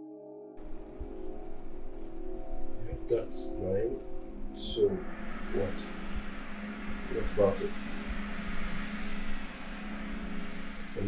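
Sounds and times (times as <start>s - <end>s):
background hiss: 0.6s - 11.0s
low hum: 0.6s - 11.0s.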